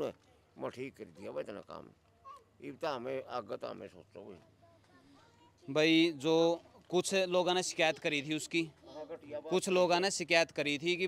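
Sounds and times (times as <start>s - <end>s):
people talking: 5.8s - 8.7s, 9.3s - 11.0s.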